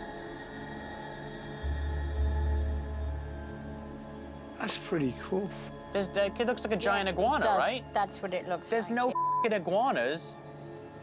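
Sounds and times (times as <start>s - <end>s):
eerie drone music: 0.0s - 7.1s.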